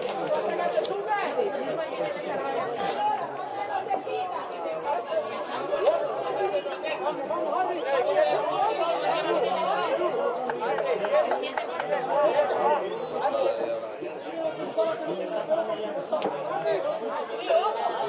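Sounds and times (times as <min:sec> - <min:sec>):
overlapping chatter: 0:00.0 - 0:18.0.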